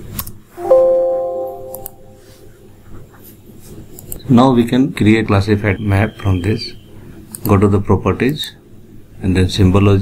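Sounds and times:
bell-like system chime: 0.6s - 2.4s.

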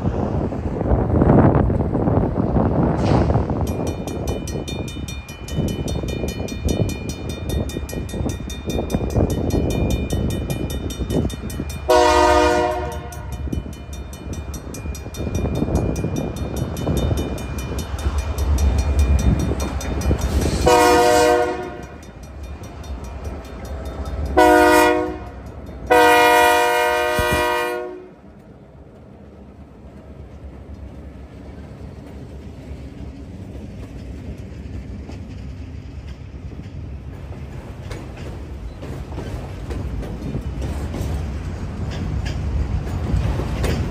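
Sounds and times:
train wheels on rails: 0.0s - 43.9s
locomotive air horn blasts: 11.9s - 13.5s, 20.6s - 22.0s, 24.4s - 28.2s.

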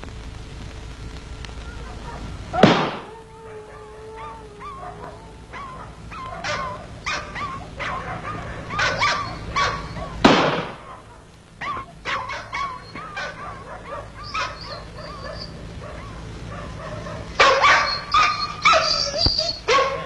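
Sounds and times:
dog yelping and whimpering: 1.8s - 10.2s, 10.9s - 20.0s
loud bang: 2.6s - 3.2s, 10.2s - 10.9s.

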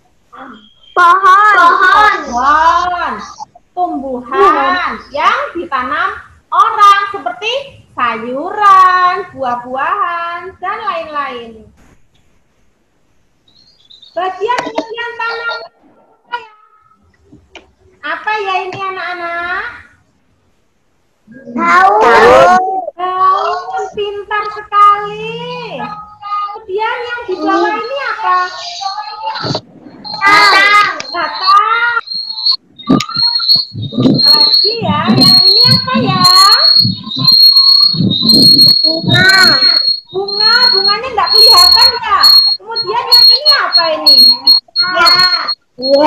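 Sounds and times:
high-pitched whistle-like tone: 0.4s - 3.5s, 27.3s - 46.0s
woman's voice on video call: 0.4s - 11.8s, 14.2s - 15.7s, 21.5s - 32.0s, 34.0s - 37.3s, 38.2s - 46.0s
high-pitched call: 27.3s - 46.0s.

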